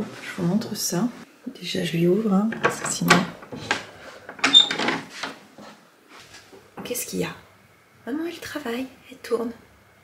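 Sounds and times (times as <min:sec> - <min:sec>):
door squeak: 0:04.4 - 0:05.0.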